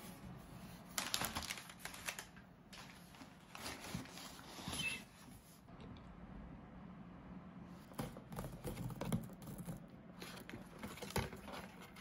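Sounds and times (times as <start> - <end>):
twine rustling on cardboard: 0.5 - 5.6.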